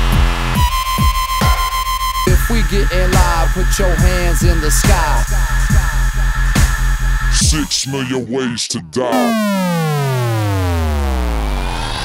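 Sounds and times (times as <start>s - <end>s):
synth bass note sliding down: 9.1s - 12.0s.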